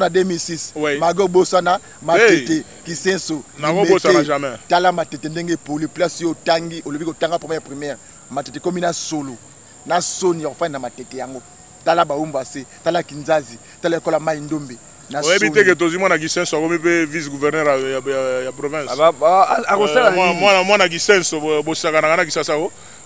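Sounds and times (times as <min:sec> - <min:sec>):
man talking: 0:00.0 - 0:22.8
crickets chirring: 0:00.0 - 0:23.0.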